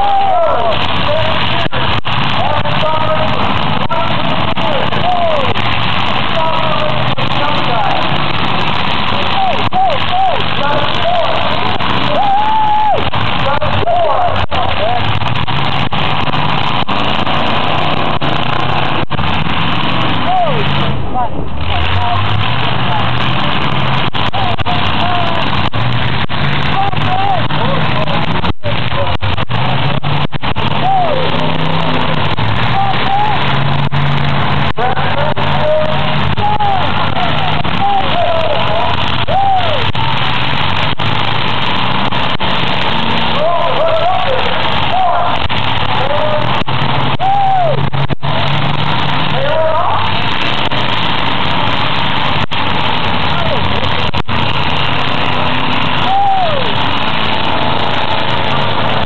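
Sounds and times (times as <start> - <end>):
car engines revving: 0.0 - 59.0
crowd voices and shouts: 0.0 - 59.0.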